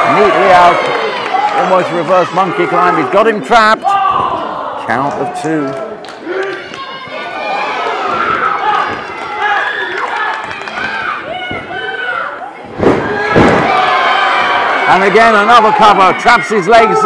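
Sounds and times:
crowd shouting and cheering: 0.0 - 17.0
body slammed onto ring mat: 12.7 - 13.9.

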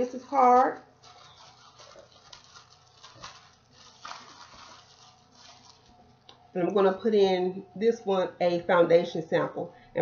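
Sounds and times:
plastic bag and paper rustling: 0.0 - 6.2.

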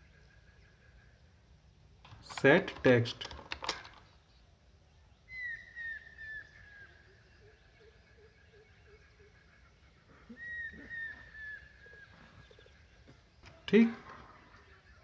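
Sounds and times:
bird chirping: 0.0 - 3.2, 3.9 - 15.0
lower bird notes: 4.1 - 15.0.

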